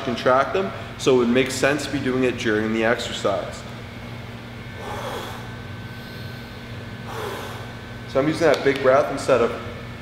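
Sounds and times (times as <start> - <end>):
steady low hum: 0.0 - 10.0
man exhaling forcefully: 4.8 - 6.4, 7.0 - 7.8.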